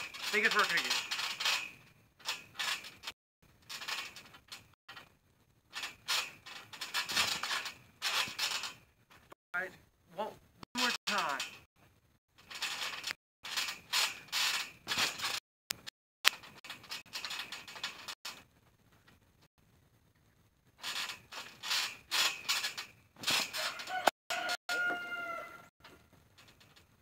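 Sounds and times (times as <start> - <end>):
trampoline springs creaking: 0.0 - 27.0.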